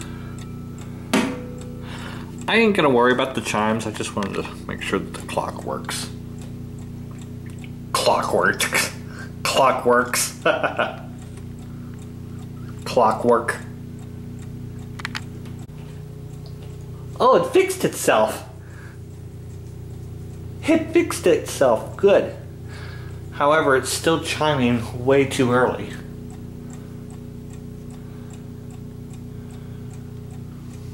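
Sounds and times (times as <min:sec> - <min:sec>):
low hum: 0:00.0 - 0:17.6, 0:18.3 - 0:30.9
clock ticking: 0:00.0 - 0:30.9.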